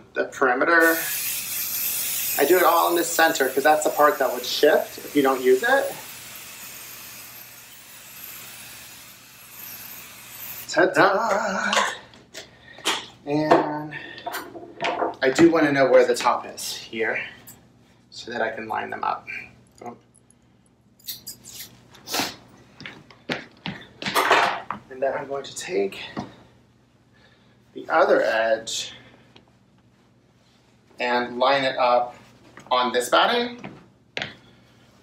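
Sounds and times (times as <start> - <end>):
aerosol can hissing: 0.8 - 10.7.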